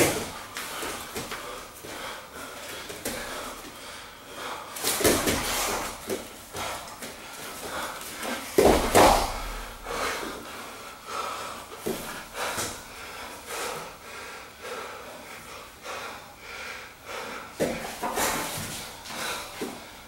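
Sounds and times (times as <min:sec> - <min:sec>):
people breathing hard: 0:00.0 - 0:20.0
bodies thudding onto mat: 0:08.5 - 0:09.5.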